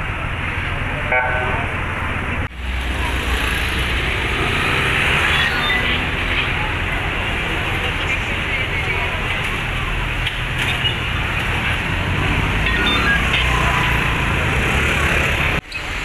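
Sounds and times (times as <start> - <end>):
traffic noise: 0.0 - 16.0
murmur of crowd: 2.4 - 16.0.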